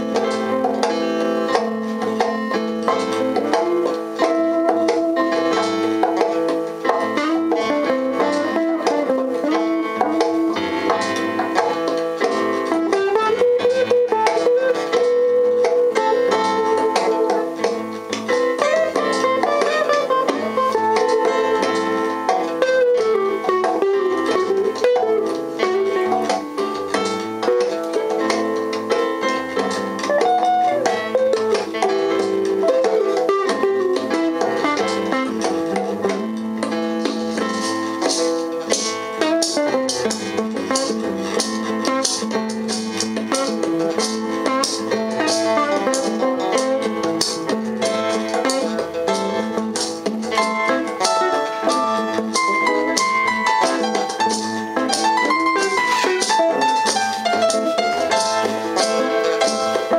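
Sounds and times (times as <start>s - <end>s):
electric guitars: 0.0s - 59.9s
plucked melodic line: 0.0s - 59.9s.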